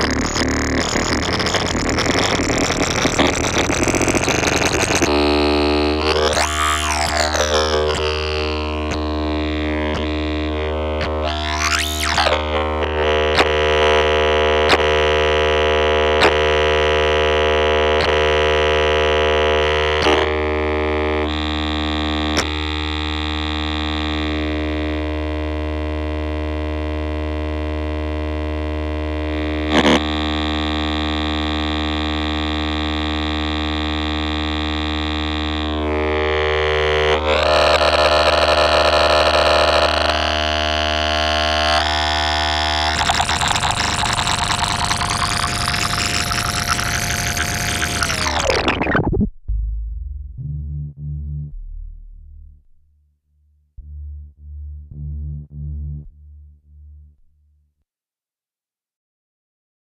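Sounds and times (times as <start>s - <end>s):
buzzy synthesizer drone: 0.0s - 53.0s.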